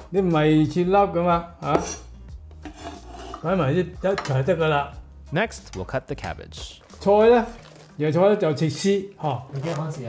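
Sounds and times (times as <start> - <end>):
cleaver scraping wooden board: 2.6 - 3.5.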